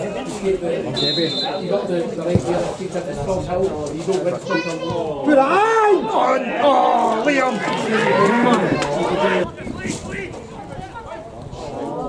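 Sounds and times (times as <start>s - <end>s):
people shouting and calling: 4.3s - 12.0s.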